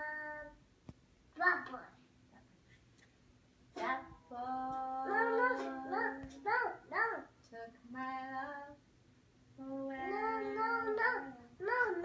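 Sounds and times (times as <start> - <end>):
child singing high notes: 3.8 - 7.4, 9.9 - 12.0.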